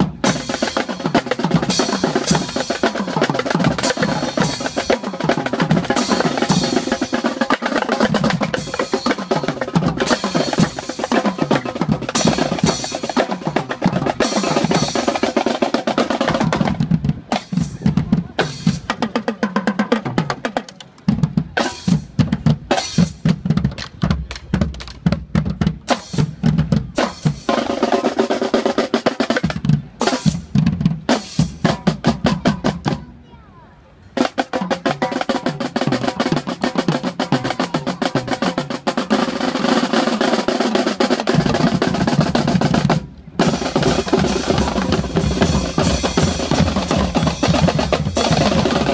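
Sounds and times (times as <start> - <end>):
marching drumline cadence: 0.0 - 33.3, 33.9 - 48.9.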